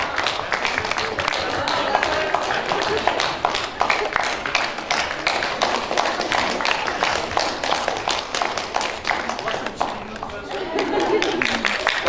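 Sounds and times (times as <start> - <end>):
audience applause: 0.0 - 12.0
voices chattering: 0.0 - 12.0.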